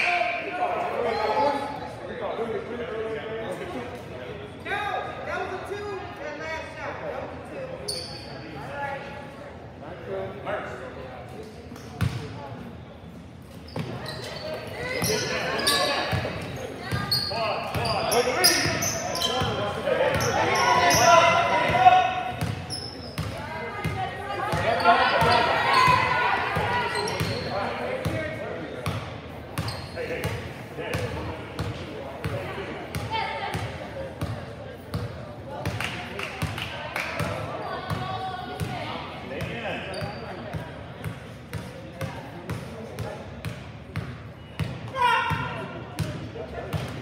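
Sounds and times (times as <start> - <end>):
people shouting in echoing hall: 44.9 - 45.8.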